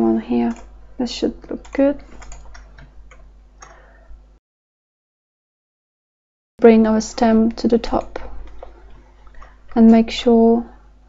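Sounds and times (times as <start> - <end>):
low room hum: 0.0 - 4.4, 6.6 - 11.0
computer mouse clicks: 1.4 - 3.8.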